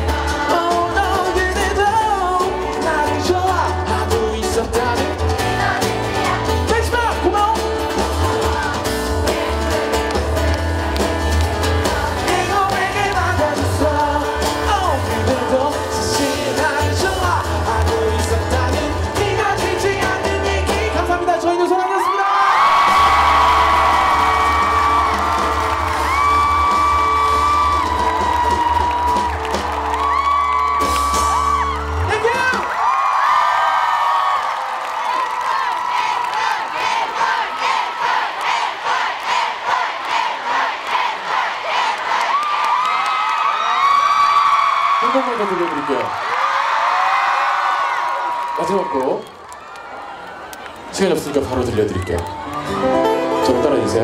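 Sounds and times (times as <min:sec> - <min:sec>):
crowd singing along: 0:00.0 - 0:06.9, 0:07.7 - 0:21.3, 0:35.4 - 0:42.4
live pop-rock band playing: 0:00.0 - 0:21.7, 0:22.6 - 0:32.8, 0:52.4 - 0:54.0
crowd whooping: 0:20.9 - 0:38.3, 0:42.0 - 0:53.9.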